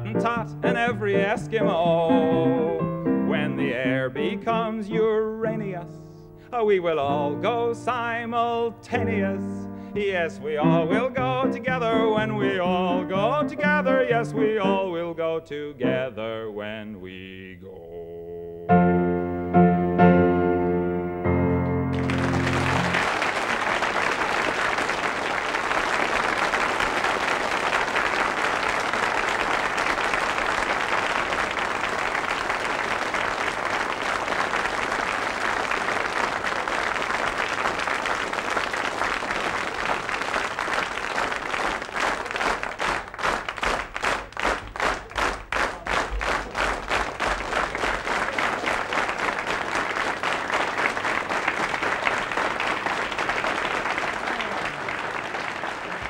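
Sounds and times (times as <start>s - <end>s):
rhythmic clapping in unison: 0.0s - 5.8s, 10.0s - 15.6s, 21.9s - 56.0s
audience applauding: 21.8s - 56.0s.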